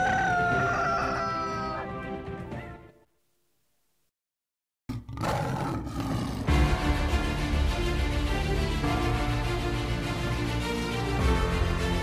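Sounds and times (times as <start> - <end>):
lion roar: 4.9 - 6.6.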